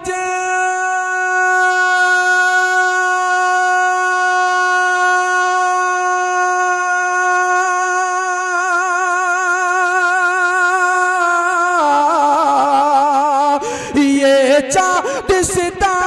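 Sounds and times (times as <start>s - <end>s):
man singing a long note: 0.0s - 16.0s.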